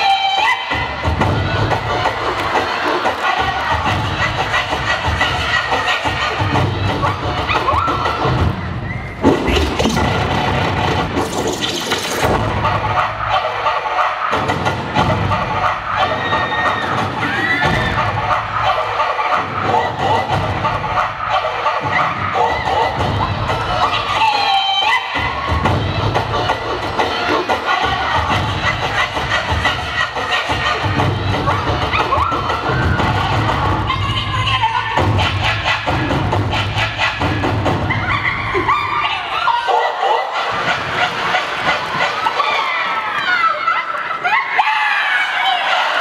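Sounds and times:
crowd cheering and screaming: 0.0s - 10.2s, 12.9s - 20.3s, 20.9s - 28.4s, 30.2s - 35.1s, 37.2s - 46.0s
dance music with heavy beat: 0.0s - 42.6s.

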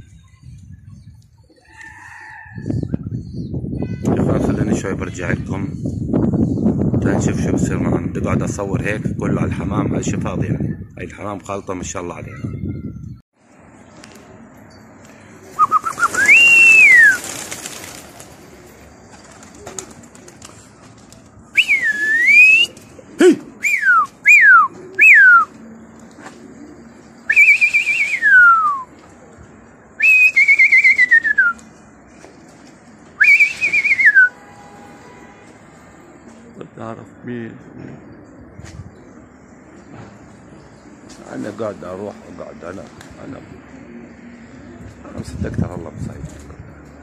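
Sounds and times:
man whistling loudly: 15.6s - 17.2s, 21.6s - 22.8s, 23.6s - 25.5s, 27.3s - 28.9s, 30.0s - 31.6s, 33.2s - 34.4s.

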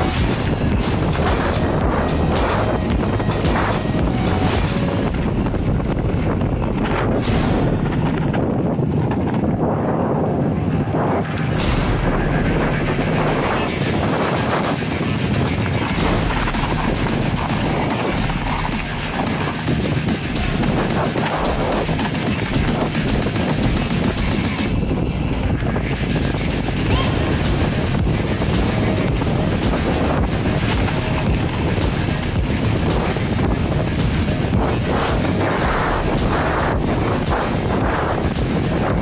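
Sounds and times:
sharp evenly spaced clicks: 0.0s - 5.1s, 15.8s - 24.7s, 27.3s - 39.0s
wind buffeting microphone: 0.0s - 39.0s.

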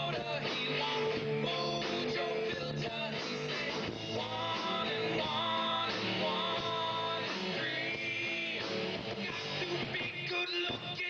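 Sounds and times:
live rock band with guitar: 0.0s - 11.0s.

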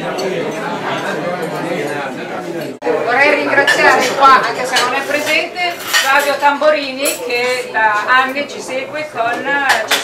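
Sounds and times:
woman speaking: 3.1s - 10.0s
cutlery and dishes clinking: 3.6s - 8.5s, 9.2s - 10.0s.

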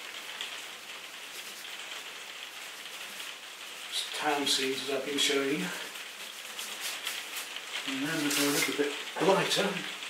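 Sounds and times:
paint roller hissing on canvas: 0.0s - 9.7s.

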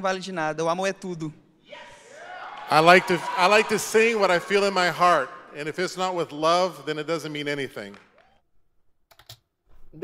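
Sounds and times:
computer keyboard clicks: 9.1s - 9.4s.

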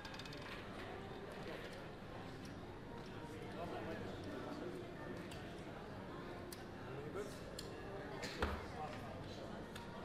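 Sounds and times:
murmur of voices: 0.0s - 10.0s.

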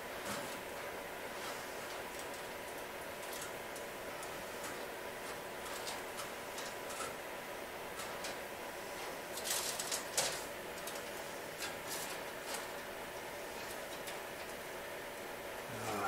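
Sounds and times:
steady background hum: 0.0s - 16.0s
light strip tape rustling: 9.3s - 12.9s.

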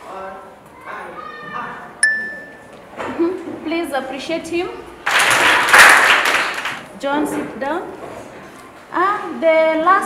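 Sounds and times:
children clapping: 5.0s - 6.9s.

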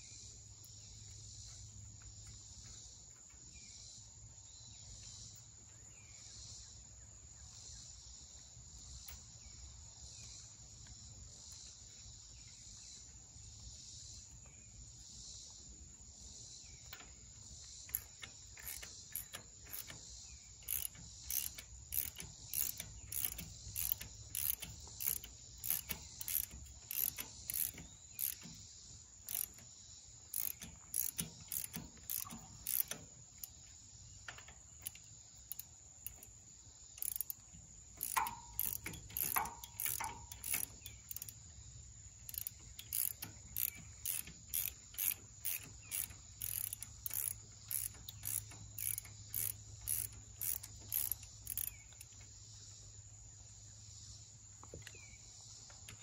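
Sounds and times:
ratchet wrench clicking: 17.7s - 33.7s, 34.3s - 41.5s, 42.2s - 52.2s.

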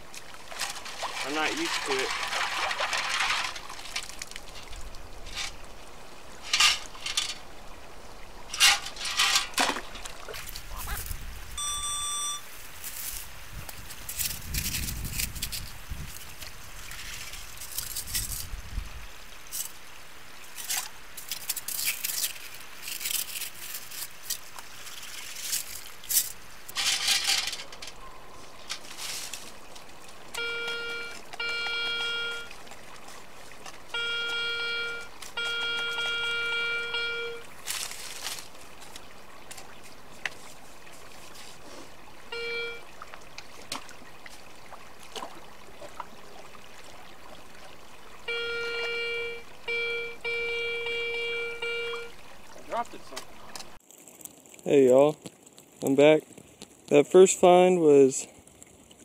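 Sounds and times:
wet sand and gravel scraping: 0.0s - 11.5s, 12.5s - 42.0s, 52.0s - 59.0s
water splashing: 0.0s - 59.0s
metal detector beeps: 11.6s - 12.5s, 30.4s - 32.5s, 34.0s - 37.5s, 42.3s - 42.8s, 48.3s - 52.2s.

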